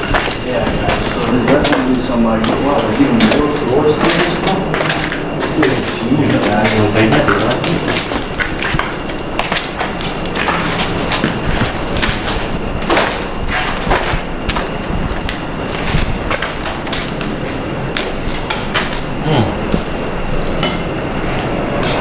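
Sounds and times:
feet scraping on concrete: 0.0 - 19.2
footsteps on concrete stairs: 0.0 - 20.0.

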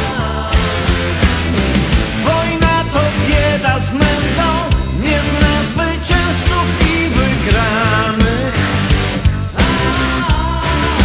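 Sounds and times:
rock music: 0.0 - 11.0.

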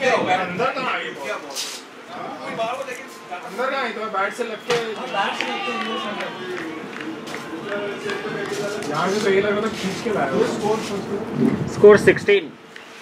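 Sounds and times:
men talking and calling: 0.0 - 12.8.

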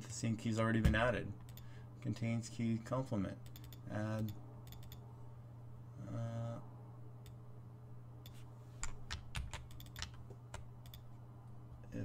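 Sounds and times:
steady low hum: 0.0 - 12.0
computer keyboard typing: 8.8 - 11.0.

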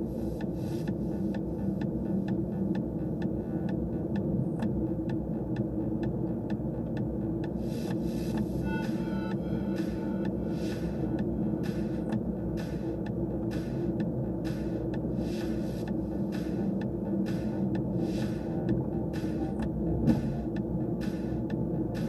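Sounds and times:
light regular ticking: 0.0 - 8.6, 9.8 - 22.0
engine and tyre rumble: 0.0 - 22.0.

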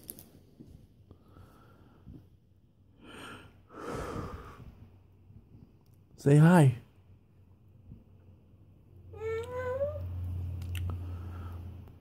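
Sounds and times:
baby high-pitched call: 9.2 - 10.1.

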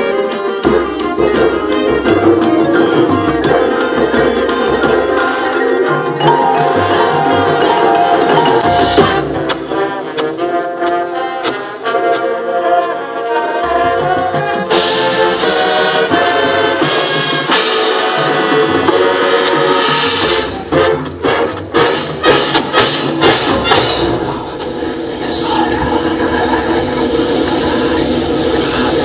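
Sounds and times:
brass chords: 0.0 - 26.1
drum percussion: 0.4 - 12.3, 13.6 - 29.0
sharp drum strikes: 14.8 - 16.4.

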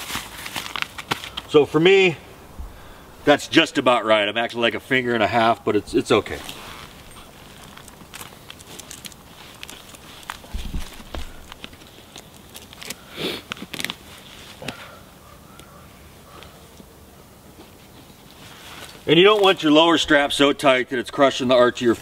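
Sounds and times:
feet shifting on leaf litter: 0.0 - 1.6, 6.0 - 14.8
strap and buckle rustling: 6.0 - 14.8.

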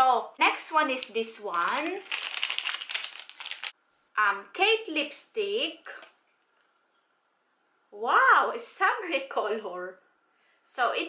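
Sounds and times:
plastic bag crinkling: 0.8 - 3.8.

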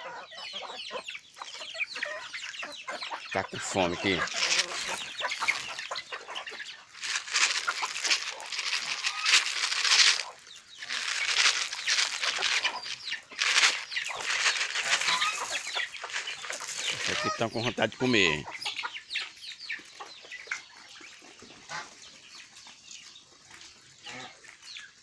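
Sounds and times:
chickens clucking and squawking: 0.0 - 25.0.

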